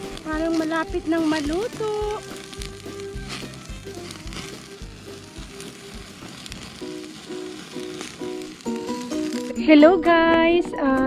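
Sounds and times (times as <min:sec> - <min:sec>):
turkey sizzling and crackling over fire: 0:00.0 - 0:10.4
background music: 0:00.0 - 0:11.0.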